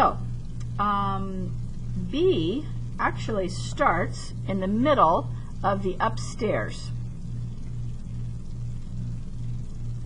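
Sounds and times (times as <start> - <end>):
pulsing low hum: 0.0 - 10.0.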